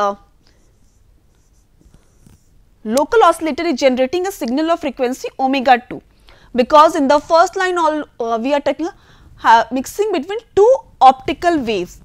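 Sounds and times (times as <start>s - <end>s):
stylus scratching on pen tablet: 0.5s - 2.6s.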